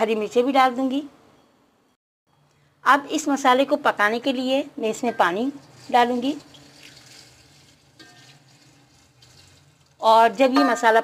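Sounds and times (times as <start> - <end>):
water pouring into metal pot: 5.5 - 10.4.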